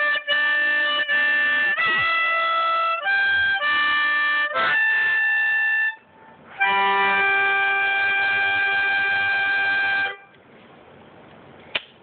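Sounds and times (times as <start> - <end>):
harmonica long note: 0.0 - 10.3.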